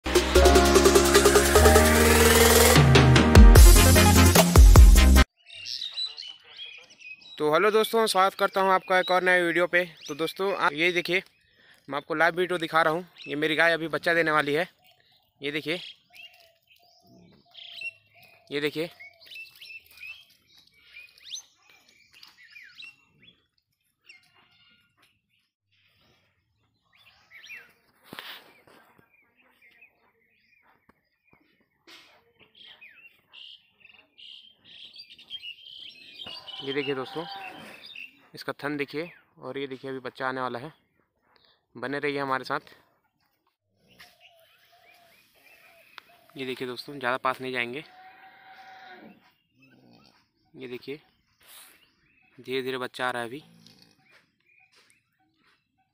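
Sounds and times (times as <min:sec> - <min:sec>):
birds chirping: 0:05.4 - 0:55.9.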